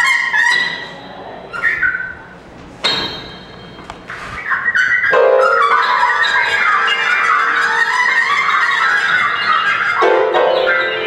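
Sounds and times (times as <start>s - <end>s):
grand piano: 5.0s - 11.0s.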